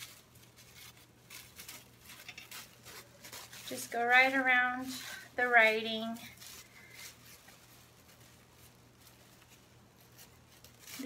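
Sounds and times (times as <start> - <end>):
plastic rustling: 0.0 - 11.0
scissors snipping plastic bag: 10.0 - 11.0.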